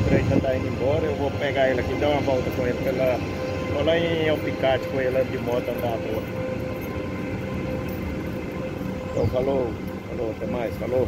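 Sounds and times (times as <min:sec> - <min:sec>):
steady mid-pitched tone: 0:00.0 - 0:11.0
train rumbling past: 0:00.0 - 0:11.0.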